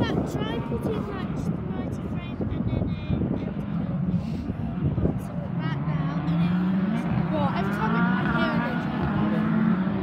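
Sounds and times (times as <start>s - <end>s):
distant race car engines: 0.0s - 10.0s.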